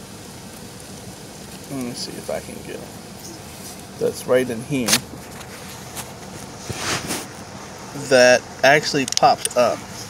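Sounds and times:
steady low background hiss: 0:00.0 - 0:10.0
short scraping hiss: 0:04.8 - 0:07.9.

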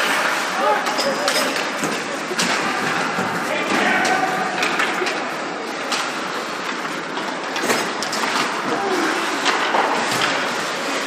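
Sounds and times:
skate blades scraping ice: 0:00.0 - 0:11.0.

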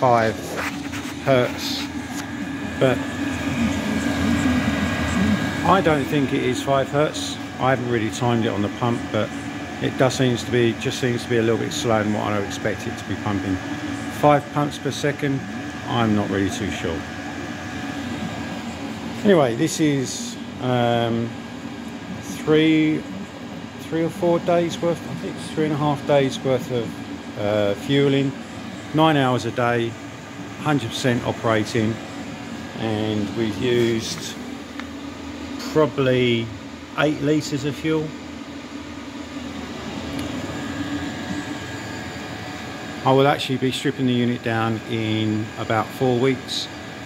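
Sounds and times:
air heater fan drone: 0:00.0 - 0:47.0.

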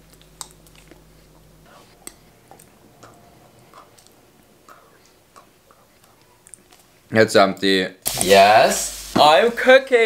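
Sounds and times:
eating mouth clicks and smacks: 0:00.0 - 0:06.9.

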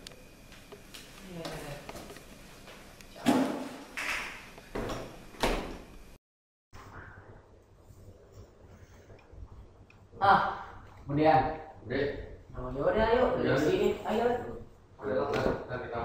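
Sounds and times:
door shutting: 0:03.2 - 0:05.9.

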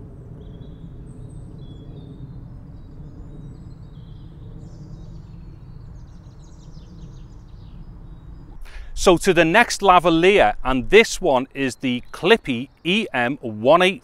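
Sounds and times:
low background rumble: 0:00.0 - 0:13.4
birds chirping: 0:00.3 - 0:14.0.

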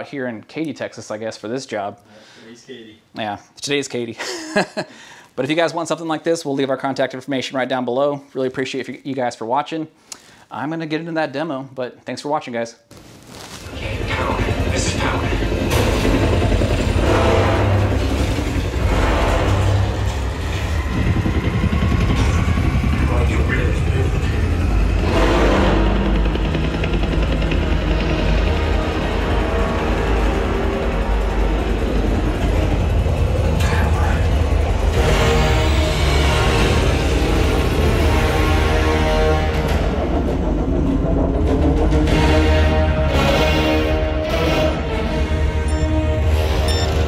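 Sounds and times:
deep rumble: 0:13.6 - 0:47.0
helicopter rotor and engine: 0:13.7 - 0:42.9, 0:44.8 - 0:47.0
dramatic orchestral score: 0:13.7 - 0:47.0.

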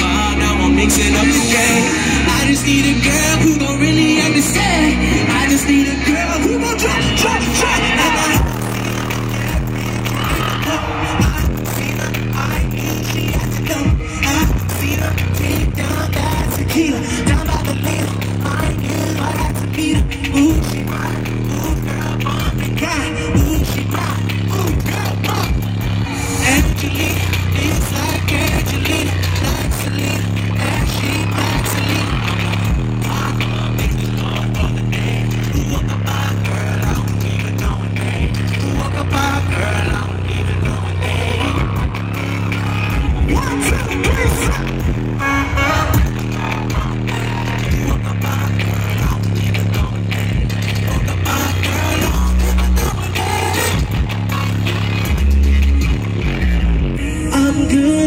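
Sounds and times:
deep bass line: 0:00.0 - 0:58.0
loud live music through pa: 0:00.0 - 0:58.0
man singing: 0:00.0 - 0:58.0.

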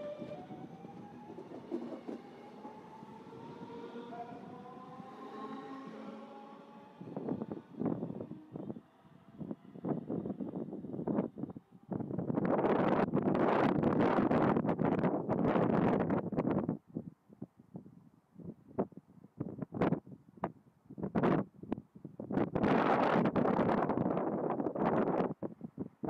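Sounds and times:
electric train whine: 0:00.0 - 0:12.8
wind buffeting microphone: 0:00.0 - 0:17.0, 0:21.0 - 0:26.0.

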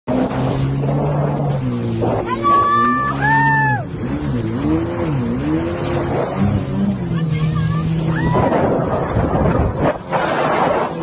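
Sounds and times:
water noise: 0:00.0 - 0:11.0
boat engine running: 0:00.1 - 0:11.0
rushing wind: 0:00.1 - 0:11.0.

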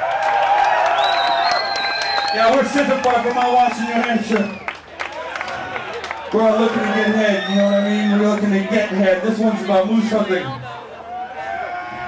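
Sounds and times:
audience cheering and clapping: 0:00.0 - 0:09.4.

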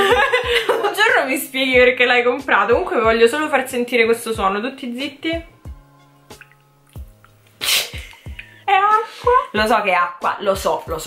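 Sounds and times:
person laughing: 0:00.0 - 0:00.9, 0:07.6 - 0:08.5
quiet background music: 0:00.0 - 0:11.0.

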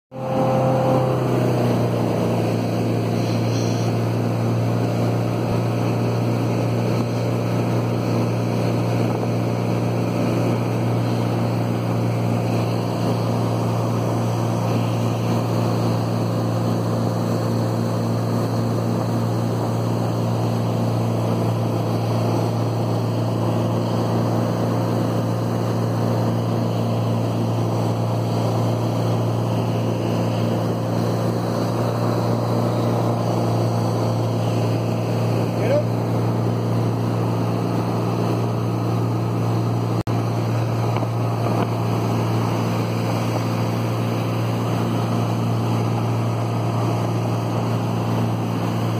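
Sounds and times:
boat engine running: 0:00.1 - 0:48.9
water rushing in wake: 0:00.1 - 0:48.9.

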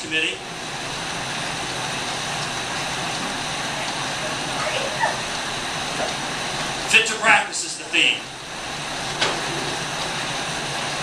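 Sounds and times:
room fans: 0:00.0 - 0:11.0
spin bike flywheels whirring: 0:00.0 - 0:11.0.

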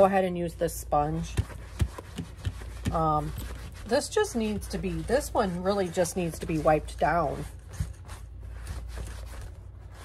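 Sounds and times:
sponge rubbing leather: 0:01.2 - 0:10.0.

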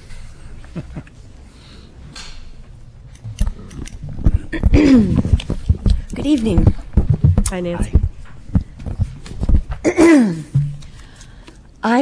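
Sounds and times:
dull knocks on microphone: 0:04.2 - 0:09.8.

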